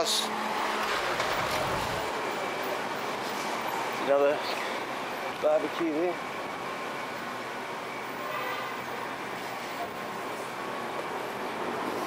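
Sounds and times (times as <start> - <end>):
street traffic hiss and rumble: 0.0 - 12.0
cars driving past: 0.1 - 5.0.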